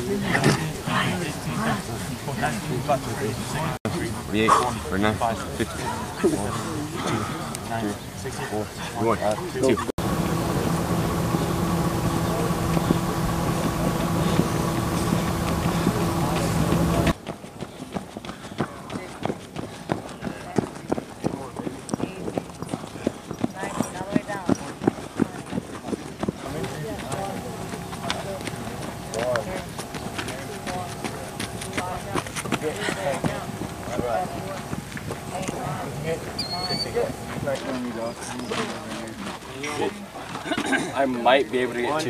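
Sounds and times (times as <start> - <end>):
loud steady hum: 10.0 - 17.2, 26.5 - 36.4
running footsteps on dirt: 10.0 - 35.7.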